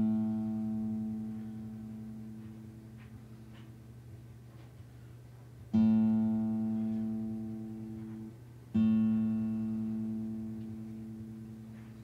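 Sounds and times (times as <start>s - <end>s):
acoustic guitar note ringing: 0.0s - 3.7s, 5.7s - 12.0s.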